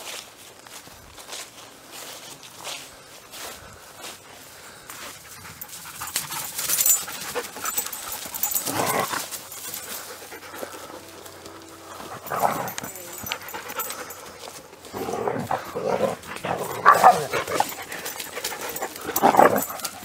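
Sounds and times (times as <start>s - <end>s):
footsteps through grass: 0.0s - 20.0s
dogs panting hard: 4.6s - 20.0s.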